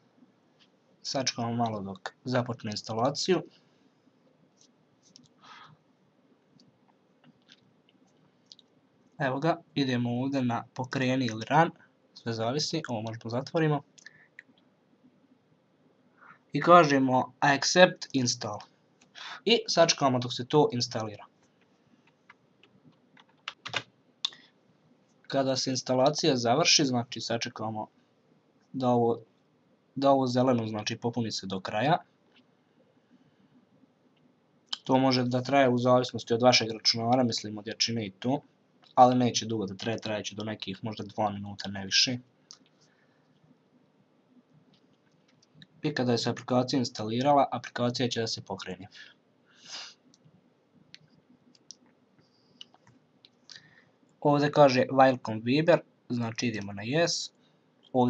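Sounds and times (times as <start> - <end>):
computer keyboard key clicks: 23.2 - 23.9.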